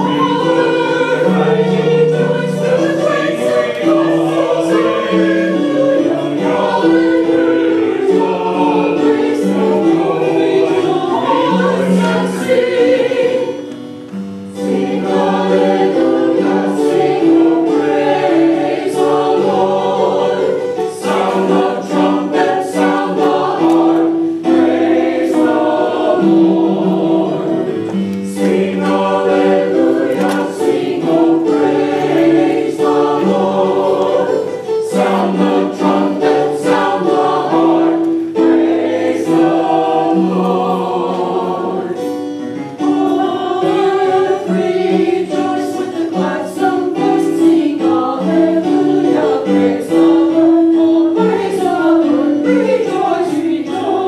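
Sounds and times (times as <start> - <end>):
mixed choir singing: 0.0 - 54.0.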